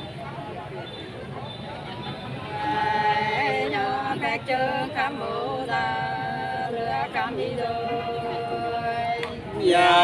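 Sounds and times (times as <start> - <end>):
unaccompanied folk singing: 2.3 - 10.0.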